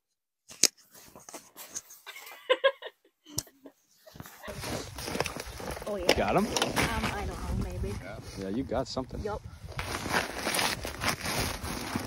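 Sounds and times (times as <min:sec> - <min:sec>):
footsteps crunching on snow: 0:04.1 - 0:08.2
wind rumbling on microphone: 0:04.5 - 0:12.0.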